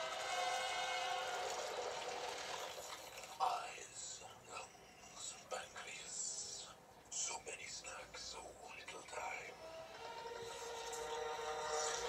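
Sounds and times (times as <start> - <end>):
whispered voice sounds from television: 3.4 - 9.6.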